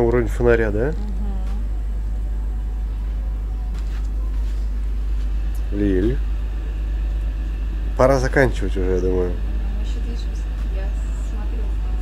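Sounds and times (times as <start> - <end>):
ship machinery rumble: 0.0 - 12.0.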